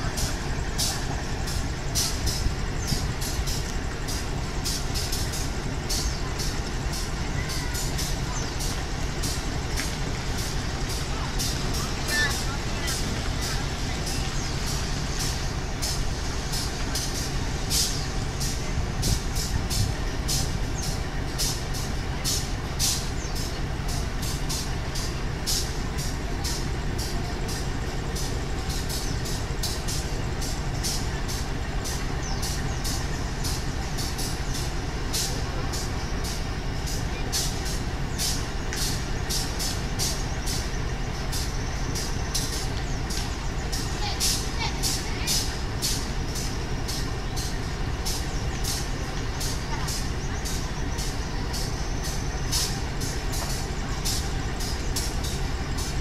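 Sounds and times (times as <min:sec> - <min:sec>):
locomotive diesel engine idling: 0:00.0 - 0:56.0.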